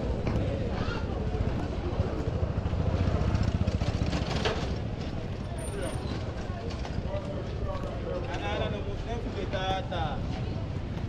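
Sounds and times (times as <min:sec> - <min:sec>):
voices of passers-by: 0:00.0 - 0:11.0.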